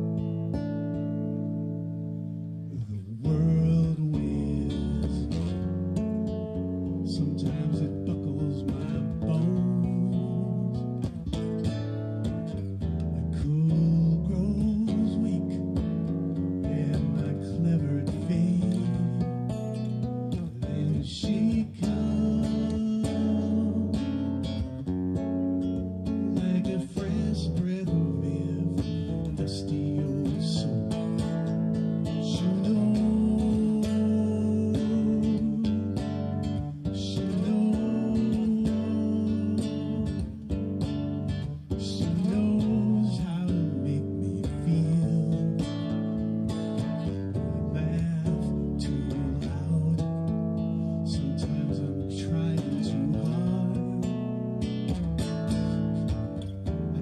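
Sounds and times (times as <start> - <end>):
acoustic guitar song: 0.0 - 57.0.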